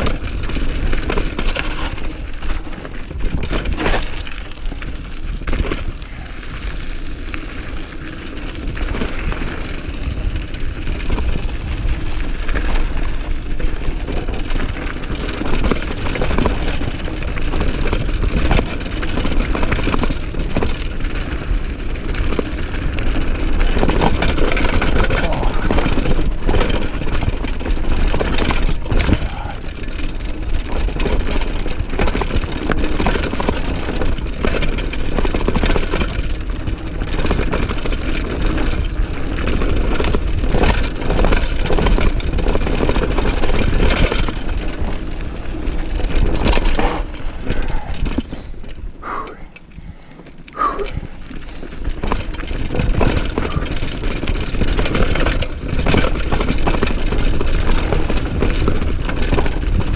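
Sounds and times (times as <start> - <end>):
bike knocks and rattles: 0.0 - 59.9
tyres crunching over dirt and stones: 0.0 - 59.9.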